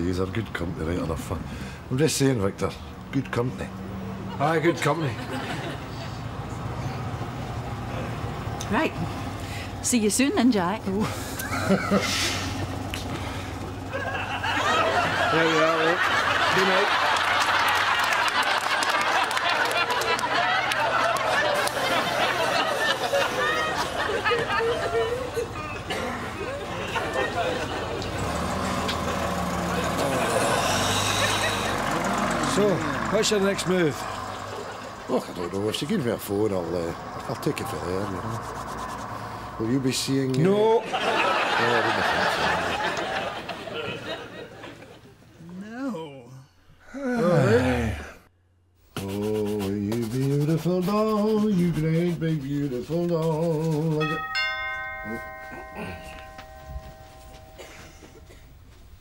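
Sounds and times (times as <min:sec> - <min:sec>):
bus engine running: 0:00.0 - 0:45.4, 0:49.7 - 0:59.0
two-tone doorbell chime: 0:54.0 - 0:58.3.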